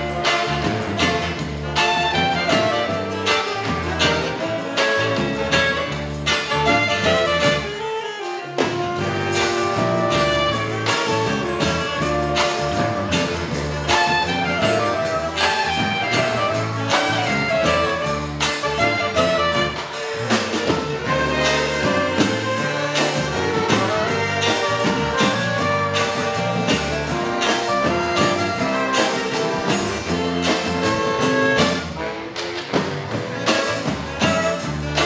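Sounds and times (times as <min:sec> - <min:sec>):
drum beat: 0:00.0 - 0:07.8, 0:08.6 - 0:35.0
bass guitar: 0:00.0 - 0:35.0
electric guitar: 0:00.0 - 0:35.0
saxophone quartet melody: 0:00.0 - 0:35.0.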